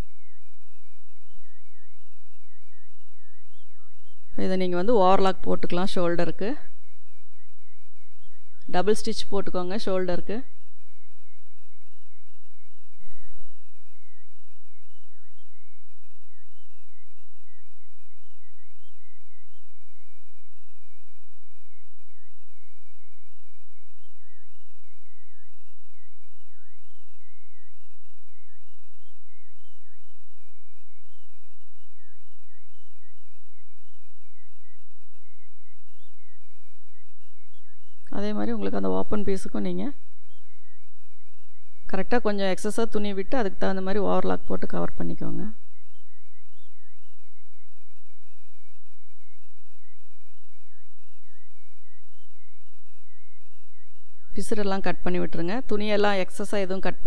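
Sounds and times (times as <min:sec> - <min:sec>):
thin high wavering tone: 0:00.0 - 0:57.0.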